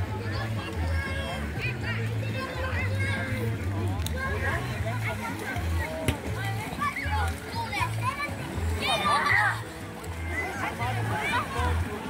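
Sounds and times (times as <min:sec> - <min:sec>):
children shouting in water: 0:00.0 - 0:12.0.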